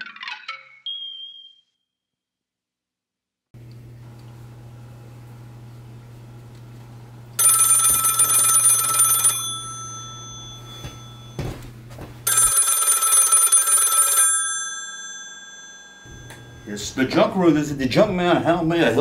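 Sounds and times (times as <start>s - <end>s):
telephone bell ringing: 7.4s - 11.6s, 12.2s - 16.8s.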